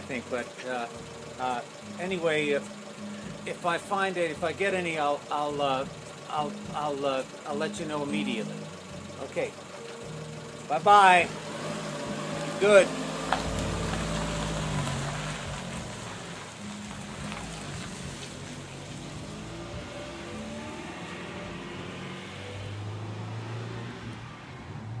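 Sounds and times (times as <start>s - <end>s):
car engine pulling away: 0.0s - 25.0s.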